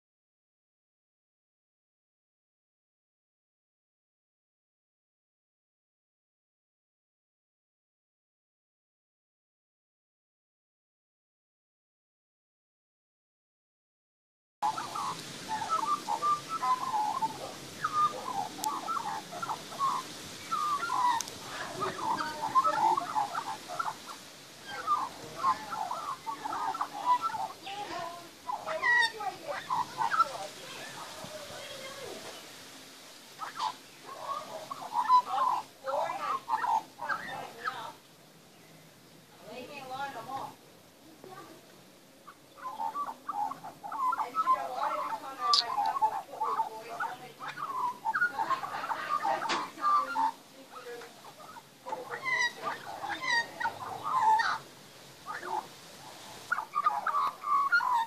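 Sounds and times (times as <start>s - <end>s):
magpie warbling: 14.6s - 32.2s, 33.3s - 38.0s, 42.2s - 58.0s.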